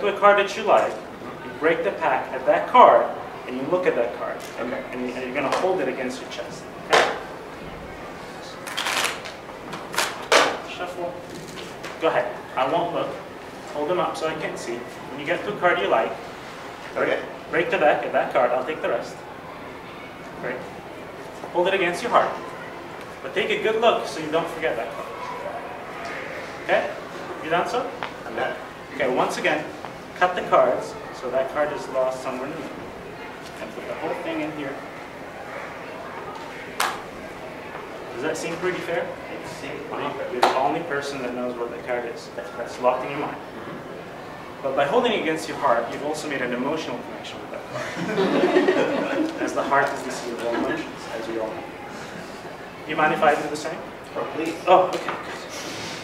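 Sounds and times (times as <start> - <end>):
playing cards rustling: 8.6 - 10.6.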